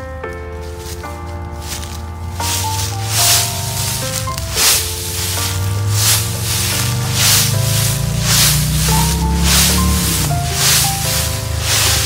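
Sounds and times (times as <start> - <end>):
instrumental background music: 0.0 - 12.0
rising hiss: 2.4 - 12.0.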